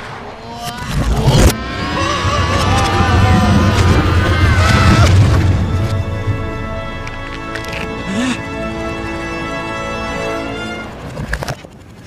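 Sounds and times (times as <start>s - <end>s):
reversed low rumble: 0.0s - 9.1s.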